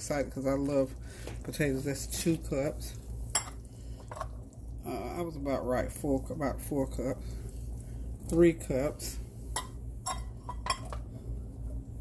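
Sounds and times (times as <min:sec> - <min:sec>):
steady low hum: 0:00.0 - 0:12.0
utensil clinking on pot rim: 0:09.5 - 0:11.0.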